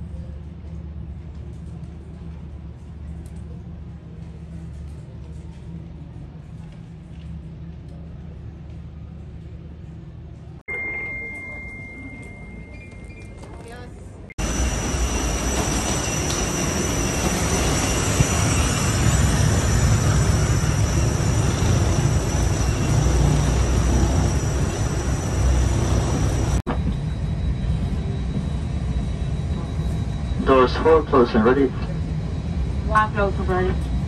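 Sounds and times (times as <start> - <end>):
jet engine rumble and whine: 0.0 - 34.0
cabin air system hum: 14.2 - 34.0.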